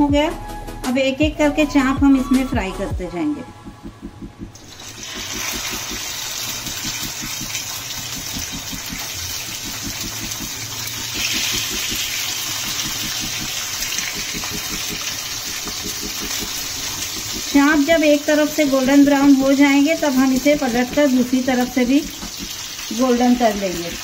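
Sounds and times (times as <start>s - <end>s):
meat sizzling in oil: 4.6s - 24.0s.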